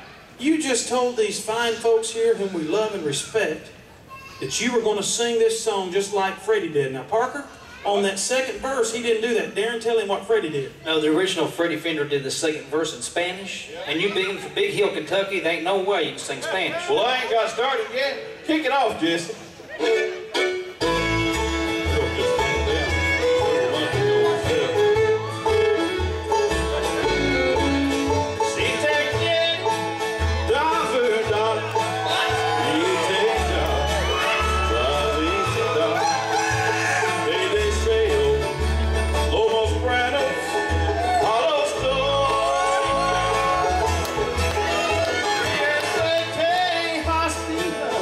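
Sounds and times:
bluegrass band playing: 0:00.0 - 0:48.0
acoustic guitars: 0:19.3 - 0:48.0
fiddle sliding phrases: 0:19.8 - 0:47.8
banjo: 0:19.8 - 0:48.0
upright bass run: 0:20.8 - 0:48.0.

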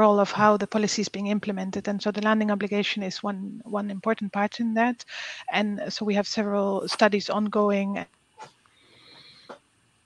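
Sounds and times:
faint breath drawn in: 0:08.7 - 0:09.6.

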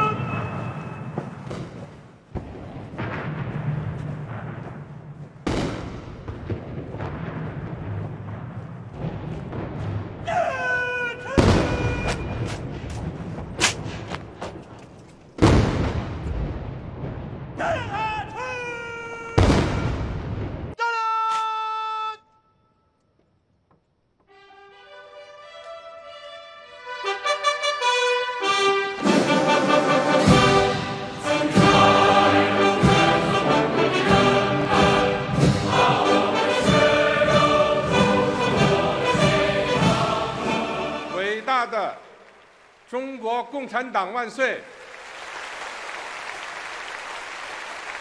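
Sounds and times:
brass band chord: 0:24.3 - 0:41.2.

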